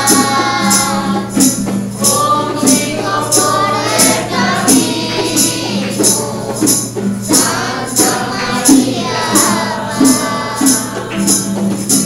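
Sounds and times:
group singing a hymn: 0:00.0 - 0:12.0
tambourine shaken: 0:00.0 - 0:12.0.

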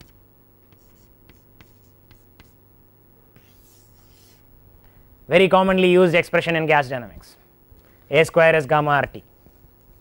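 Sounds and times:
chalk scraping on blackboard: 0:00.7 - 0:02.6, 0:03.4 - 0:04.4
chalk tapping on blackboard: 0:00.7 - 0:02.6, 0:03.4 - 0:04.4.

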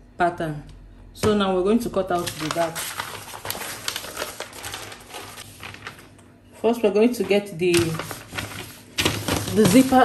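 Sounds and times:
paper rustling and crinkling: 0:02.1 - 0:06.2, 0:07.2 - 0:10.0.

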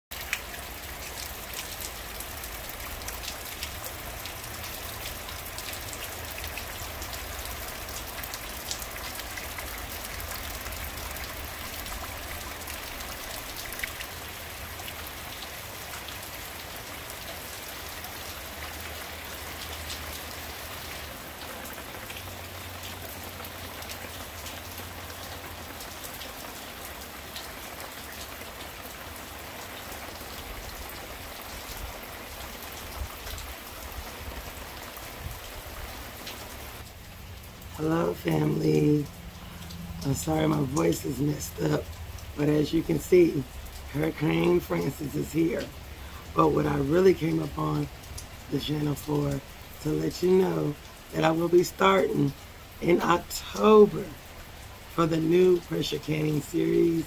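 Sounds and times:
heavy rain falling: 0:00.1 - 0:57.0.

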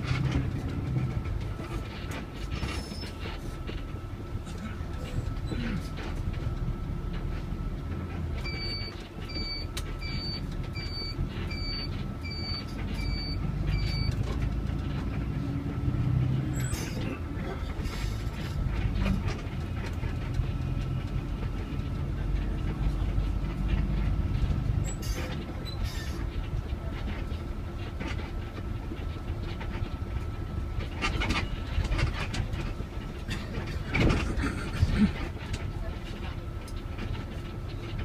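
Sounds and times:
bus engine and road rumble: 0:00.0 - 0:38.0
short electronic beeps: 0:08.5 - 0:14.2.

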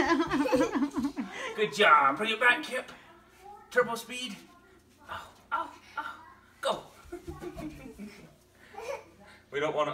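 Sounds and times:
soft laughter: 0:00.0 - 0:01.4.

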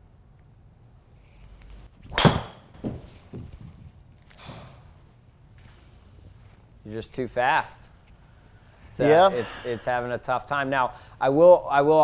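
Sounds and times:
golf club striking ball: 0:02.1 - 0:03.0
ball hitting impact screen: 0:02.1 - 0:03.1.

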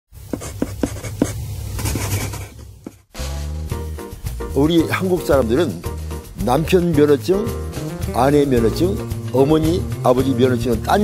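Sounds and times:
chalk scratching on chalkboard: 0:00.2 - 0:03.1
chalk tapping on board: 0:00.2 - 0:03.1.

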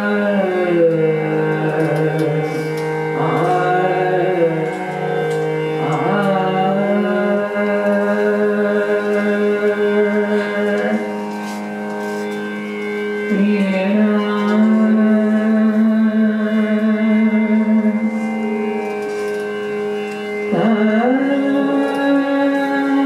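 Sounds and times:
woman singing long gliding notes: 0:00.0 - 0:11.6, 0:13.2 - 0:19.1, 0:20.5 - 0:23.0
harmonium sustaining: 0:00.0 - 0:23.0.

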